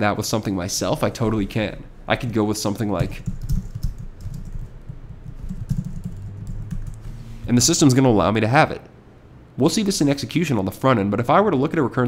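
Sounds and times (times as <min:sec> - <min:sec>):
typing on computer keyboard: 0:03.0 - 0:07.2.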